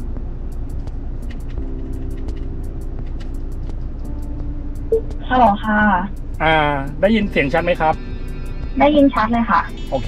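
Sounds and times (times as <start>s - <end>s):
low cabin hum: 0.0s - 10.0s.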